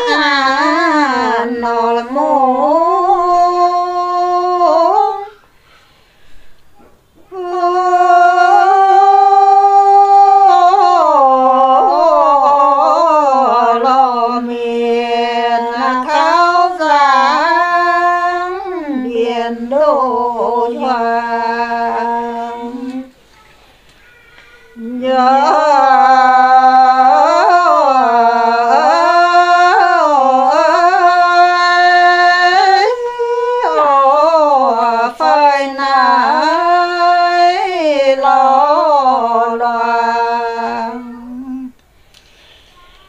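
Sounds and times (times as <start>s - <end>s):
woman singing folk song: 0.0s - 5.4s, 7.3s - 23.2s, 24.8s - 41.8s.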